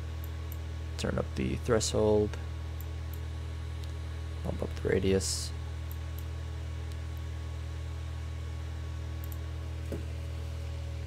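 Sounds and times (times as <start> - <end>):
low electrical hum: 0.0 - 11.0
faint mouse clicks: 9.2 - 9.4.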